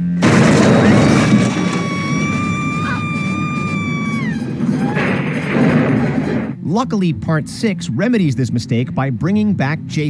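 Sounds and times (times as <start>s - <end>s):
woman screaming: 1.4s - 5.2s.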